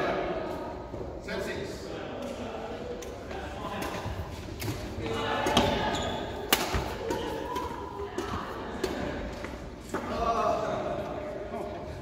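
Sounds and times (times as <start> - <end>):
racket hitting shuttlecock: 6.4 - 9.3.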